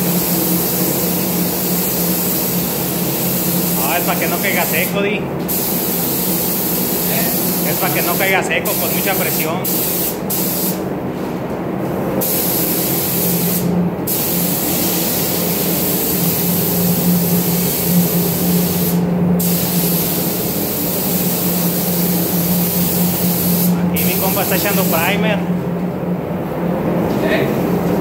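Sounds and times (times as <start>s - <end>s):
spray gun hissing: 0.0s - 10.8s, 12.2s - 25.4s
steady low hum: 0.0s - 28.0s.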